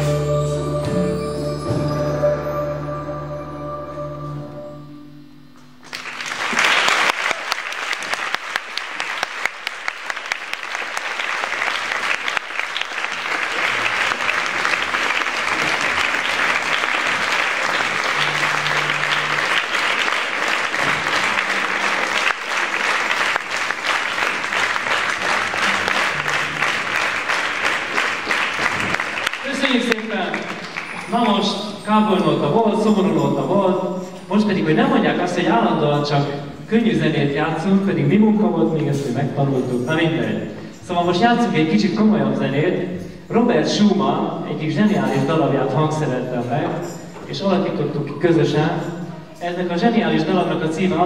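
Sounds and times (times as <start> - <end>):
audience applauding: 5.8 - 31.8.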